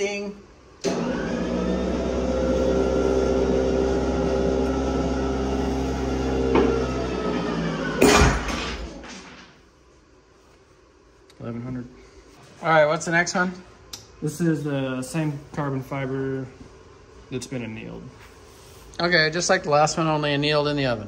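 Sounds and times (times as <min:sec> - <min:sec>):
machine motor humming: 0:00.8 - 0:09.0.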